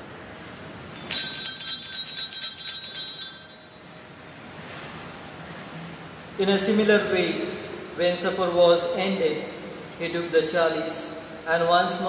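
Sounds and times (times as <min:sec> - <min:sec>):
altar bells jingling: 0:01.0 - 0:03.9.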